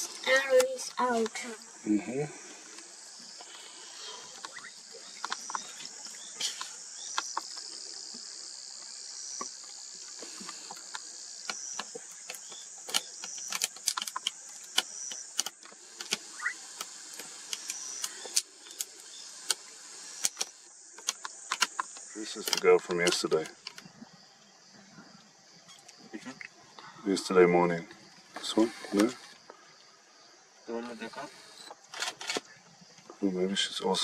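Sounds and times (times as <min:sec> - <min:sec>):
insects chirring: 0:00.0 - 0:34.0
sharp clicks and knocks: 0:10.4 - 0:18.9, 0:20.2 - 0:23.8.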